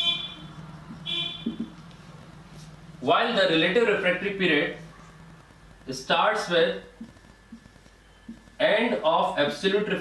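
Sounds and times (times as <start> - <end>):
marker squeaking on whiteboard: 0.8 - 1.9, 7.0 - 8.6.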